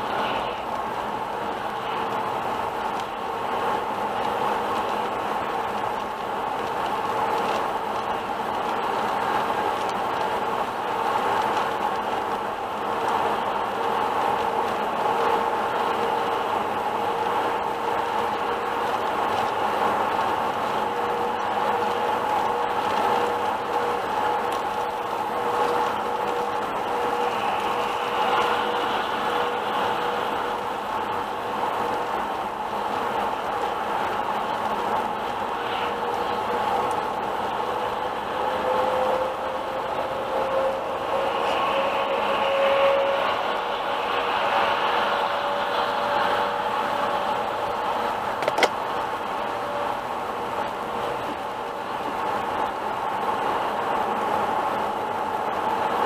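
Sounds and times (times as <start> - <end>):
tyre and engine drone: 0.0 - 55.6.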